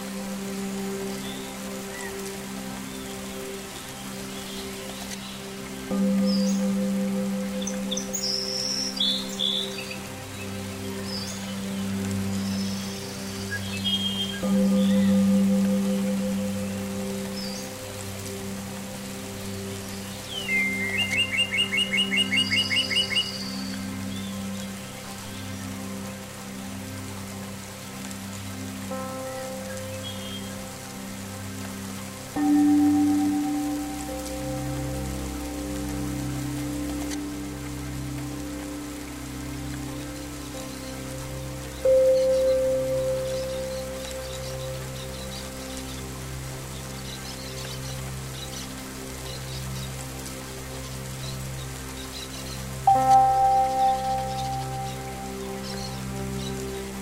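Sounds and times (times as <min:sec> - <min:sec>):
ambient music of low held notes: 0:00.0 - 0:57.0
steady rain: 0:00.0 - 0:57.0
birds chirping: 0:50.8 - 0:57.0.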